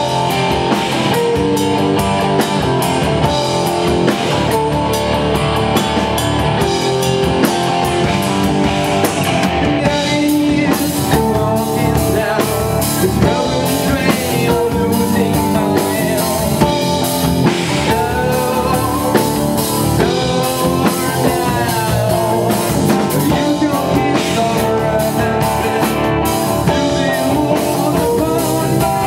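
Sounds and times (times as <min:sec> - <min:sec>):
drum kit beat: 0:00.0 - 0:29.0
electric guitars: 0:00.0 - 0:29.0
rock band playing live: 0:00.0 - 0:29.0.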